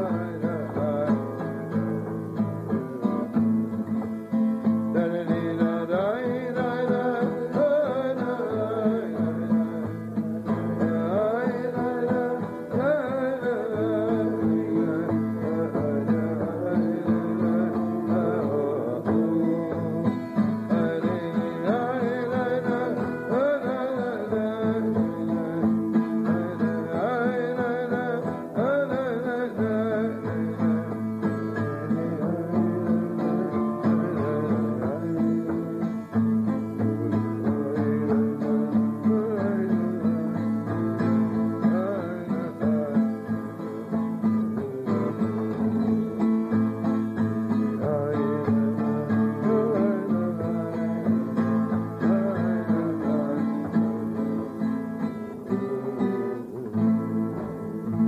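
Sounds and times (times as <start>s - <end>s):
acoustic guitar strumming: 0.0s - 58.0s
man singing: 0.0s - 58.0s.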